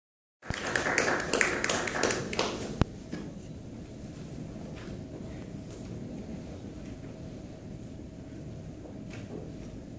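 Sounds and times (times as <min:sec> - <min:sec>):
small audience applauding: 0:00.4 - 0:02.8.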